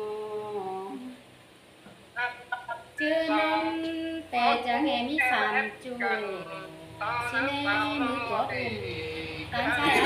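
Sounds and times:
woman singing a long note: 0.0s - 1.2s.

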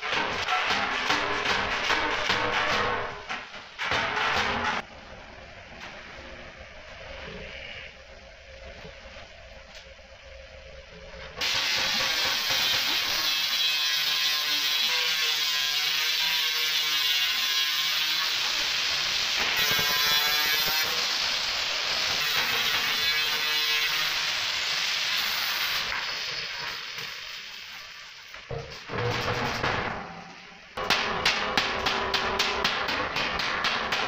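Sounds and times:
angle grinder cutting sheet steel: 11.4s - 28.3s.

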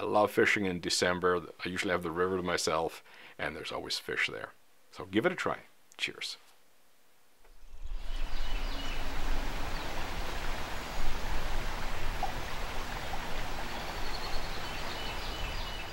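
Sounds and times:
river water rushing: 7.7s - 15.9s.

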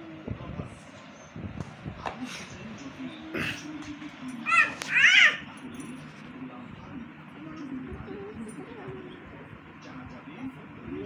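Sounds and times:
low background murmur: 0.0s - 11.0s.

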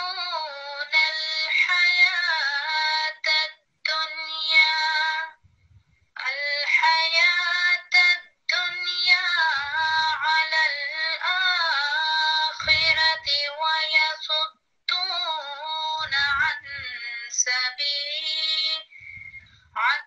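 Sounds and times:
woman chanting a recitation: 0.0s - 5.4s, 6.2s - 20.0s.

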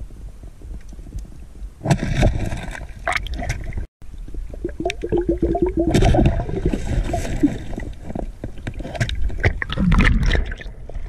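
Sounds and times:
water gurgling and sloshing: 1.8s - 11.0s
small clicks and bubbly blips: 4.6s - 6.4s.

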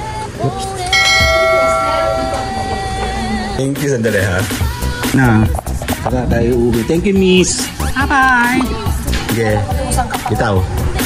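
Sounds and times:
background music with singing: 0.0s - 11.0s
bell-like chime: 0.9s - 3.0s.

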